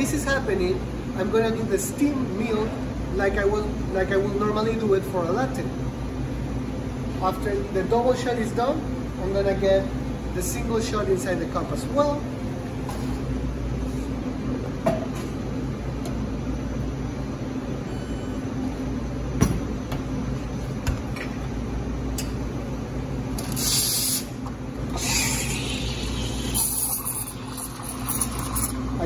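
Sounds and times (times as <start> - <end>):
espresso machine humming: 23.4 - 29.0.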